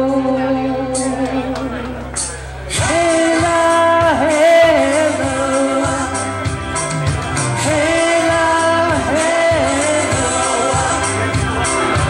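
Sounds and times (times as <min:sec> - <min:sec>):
woman singing into microphone: 0:00.0 - 0:02.0, 0:02.7 - 0:06.6, 0:07.6 - 0:11.6
backing music: 0:00.0 - 0:12.0.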